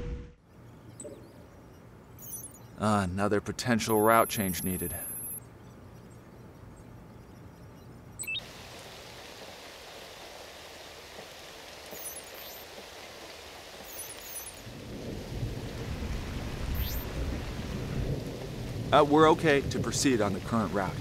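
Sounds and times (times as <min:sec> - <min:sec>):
steady rain hiss: 0:05.6 - 0:21.0
water surging into drain: 0:08.4 - 0:17.9.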